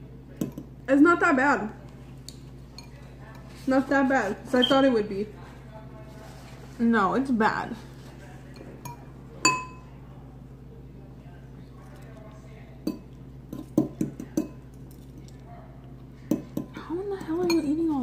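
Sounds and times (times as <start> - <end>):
metal utensils clinking against bowl: 2.7 - 3.4, 8.5 - 9.9, 16.3 - 18.0.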